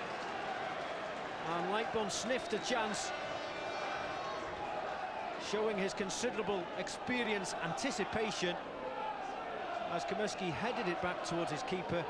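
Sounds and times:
football crowd noise: 0:00.0 - 0:12.0.

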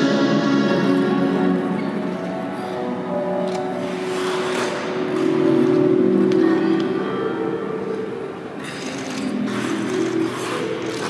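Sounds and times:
music with sustained tones: 0:00.0 - 0:11.0
skate blades scraping ice: 0:03.8 - 0:06.3, 0:08.6 - 0:11.0.

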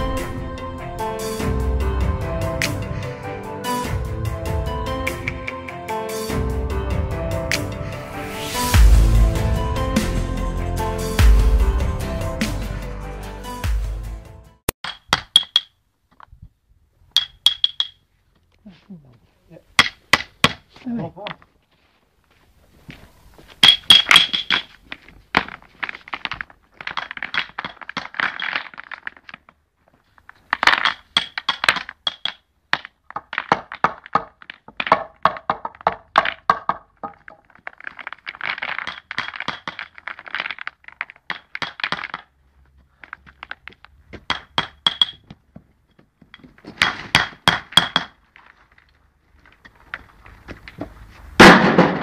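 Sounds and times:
hammer tapping stones: 0:14.8 - 0:15.7, 0:17.2 - 0:18.0, 0:19.8 - 0:21.4, 0:23.6 - 0:24.7, 0:30.5 - 0:48.2
pebbles clinking: 0:22.9 - 0:45.4.

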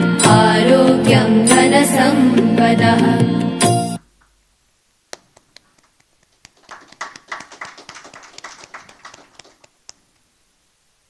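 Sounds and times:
people clapping: 0:05.2 - 0:10.0.

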